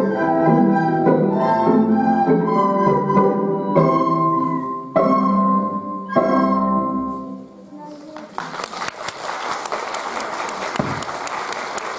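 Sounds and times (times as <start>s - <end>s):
audience applause: 8.2s - 11.9s.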